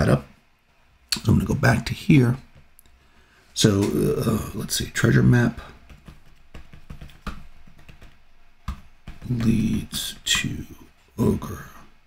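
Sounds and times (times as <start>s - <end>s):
computer keyboard typing: 5.9s - 9.6s.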